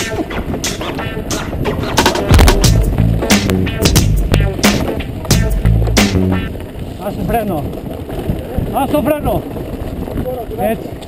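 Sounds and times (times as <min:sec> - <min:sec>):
background music with beat: 0:00.0 - 0:06.5
bike tyres on loose gravel: 0:00.0 - 0:11.0.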